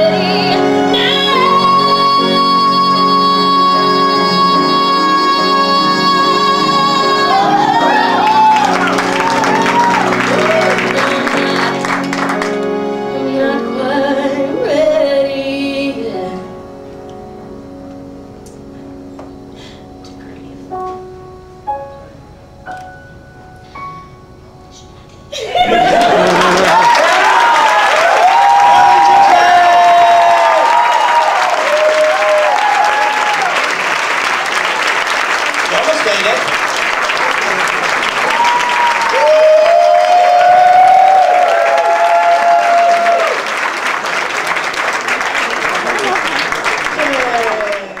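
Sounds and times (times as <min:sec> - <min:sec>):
audience applauding: 0:06.4 - 0:13.0, 0:25.5 - 0:48.0
crowd cheering and whooping: 0:06.7 - 0:12.6, 0:25.4 - 0:35.0, 0:37.1 - 0:48.0.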